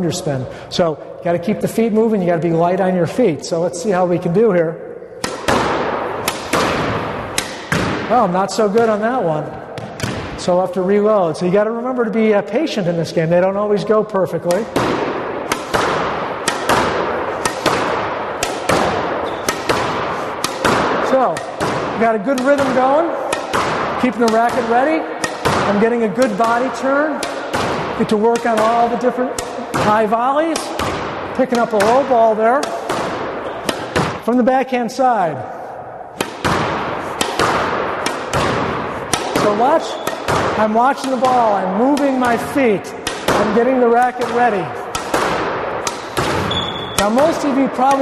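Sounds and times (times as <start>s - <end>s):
racket striking squash ball: 3.9s - 10.6s, 14.4s - 34.7s, 35.4s - 48.0s
ball hitting court wall: 5.2s - 10.5s, 14.4s - 34.4s, 35.6s - 48.0s.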